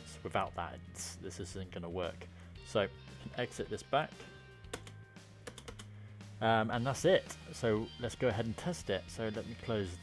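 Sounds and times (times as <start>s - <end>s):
keyboard keystroke clicks: 4.7s - 5.9s.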